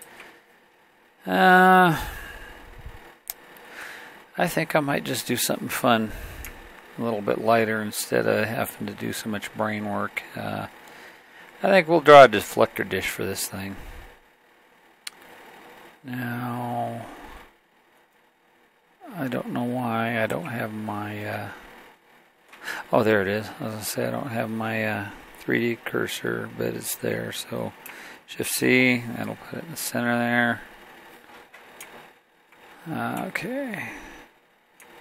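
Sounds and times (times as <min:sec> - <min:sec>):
person speaking: 0:01.2 - 0:03.0, 0:04.4 - 0:10.7, 0:11.6 - 0:14.1, 0:16.0 - 0:17.3, 0:19.0 - 0:21.6, 0:22.6 - 0:30.7, 0:32.8 - 0:34.3.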